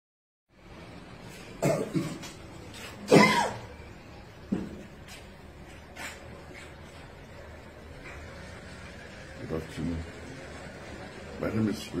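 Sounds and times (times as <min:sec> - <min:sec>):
faint room noise: 0:00.5 - 0:12.0
man coughing: 0:01.6 - 0:02.3, 0:03.1 - 0:03.7.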